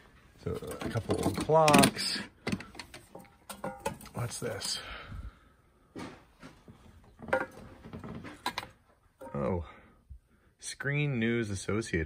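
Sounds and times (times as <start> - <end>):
glass bottles clinking: 3.2 - 4.7.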